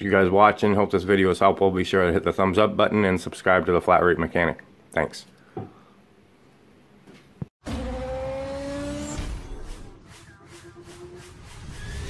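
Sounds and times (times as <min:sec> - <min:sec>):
car engine sound effect rising pitch: 0:07.6 - 0:12.0.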